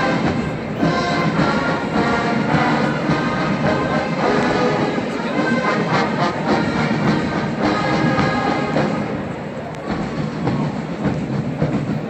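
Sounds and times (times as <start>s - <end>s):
faint drum beats: 0.0s - 12.0s
stadium crowd rumble: 0.0s - 12.0s.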